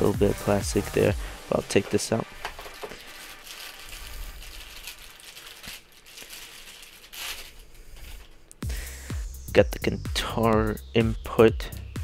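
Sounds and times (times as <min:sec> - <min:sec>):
plastic bag crinkling: 0:01.7 - 0:08.5.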